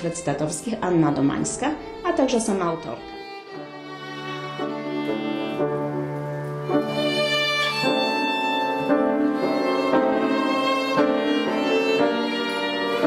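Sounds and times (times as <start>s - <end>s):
solo violin slow melody: 0.0s - 13.0s.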